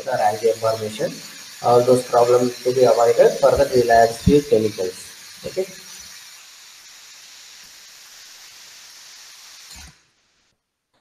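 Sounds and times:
water spray hissing: 0.0s - 10.5s.

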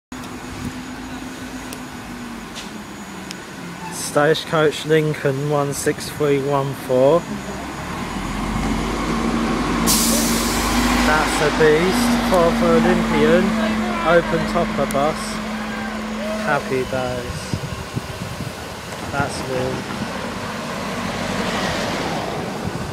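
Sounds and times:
low traffic rumble: 0.1s - 22.9s
bus engine driving past: 0.2s - 22.9s
car passing: 6.9s - 22.9s
loud hiss: 9.7s - 13.4s.

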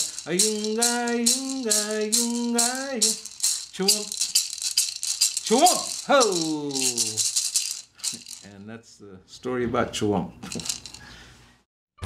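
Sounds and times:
gourd rattle shaken: 0.0s - 8.6s, 10.4s - 11.0s
person calling out: 5.4s - 7.3s.

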